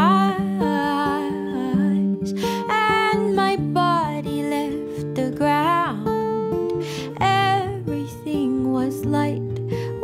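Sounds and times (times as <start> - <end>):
woman singing wordless melody: 0.0 - 10.0.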